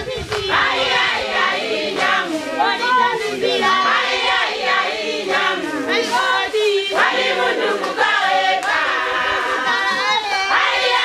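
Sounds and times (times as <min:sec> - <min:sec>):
group of voices singing: 0:00.0 - 0:11.0.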